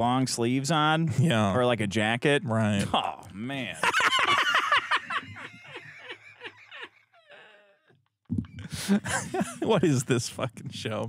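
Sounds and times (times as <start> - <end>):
men laughing hard: 3.8 - 7.8, 8.7 - 10.0.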